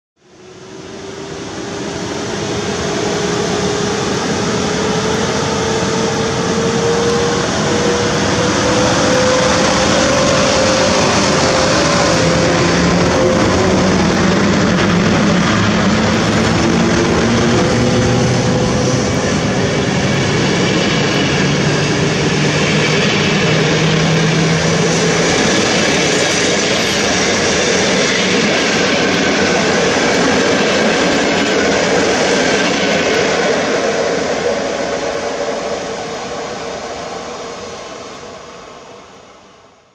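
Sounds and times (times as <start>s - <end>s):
locomotive whine: 0.2s - 39.9s
train rushing past: 0.2s - 39.9s.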